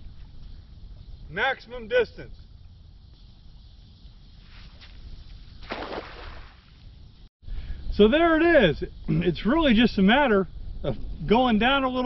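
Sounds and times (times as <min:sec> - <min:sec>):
wind rumble on microphone: 0:06.6 - 0:12.0.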